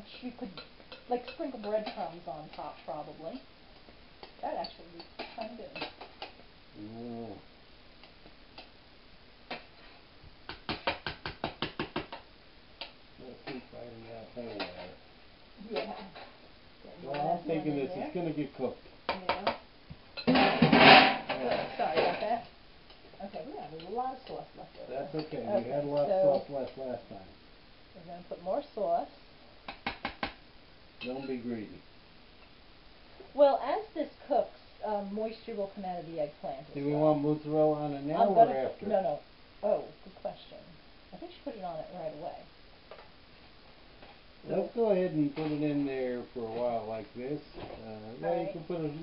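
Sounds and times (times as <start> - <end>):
metal spoon clinking on cookware: 31.0 - 31.4.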